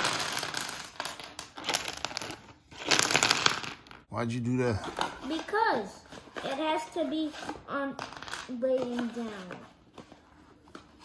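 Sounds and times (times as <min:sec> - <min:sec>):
wooden blocks clattering onto floor: 0:00.0 - 0:04.1, 0:07.9 - 0:10.2.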